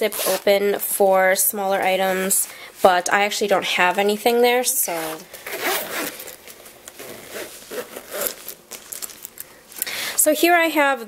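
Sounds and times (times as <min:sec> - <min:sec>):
metal zip being closed: 0:00.0 - 0:00.5, 0:04.9 - 0:06.4, 0:07.0 - 0:09.3
fabric handling rustle: 0:04.8 - 0:10.4.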